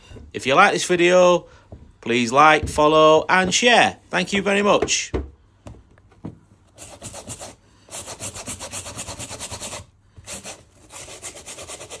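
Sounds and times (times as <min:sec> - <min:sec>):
eraser rubbing suede: 0:06.8 - 0:12.0.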